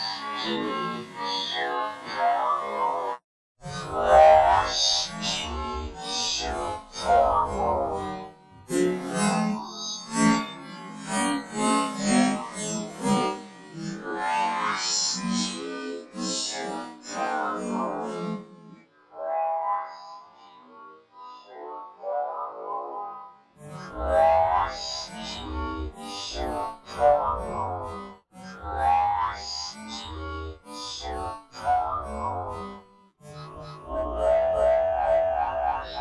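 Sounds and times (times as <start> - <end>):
warbling processed cartoon voice: 33.4 - 36.0.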